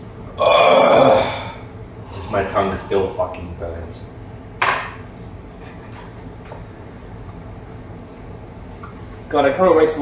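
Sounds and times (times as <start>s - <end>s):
cup set down on countertop: 4.6s - 5.0s.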